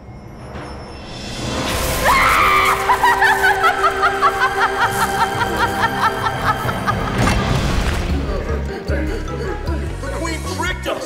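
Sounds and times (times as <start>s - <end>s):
sustained music: 0.0s - 11.0s
woman cackling laugh: 2.4s - 7.2s.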